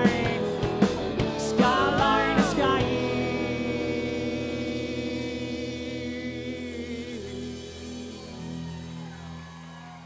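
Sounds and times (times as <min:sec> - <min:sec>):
band holding sustained chord: 0:01.7 - 0:08.3.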